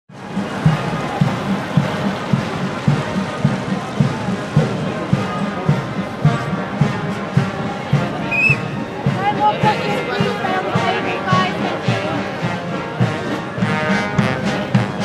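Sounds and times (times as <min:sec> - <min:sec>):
bass drum beating: 0:00.1 - 0:15.0
military brass band playing a march: 0:00.1 - 0:15.0.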